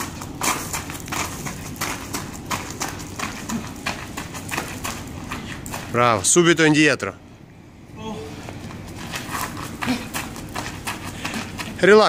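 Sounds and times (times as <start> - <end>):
shoes scuffing on gravel: 8.6 - 12.0.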